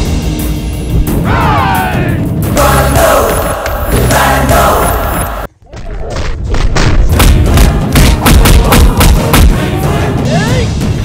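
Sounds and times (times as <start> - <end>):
punch and hit thuds: 6.6 - 9.6.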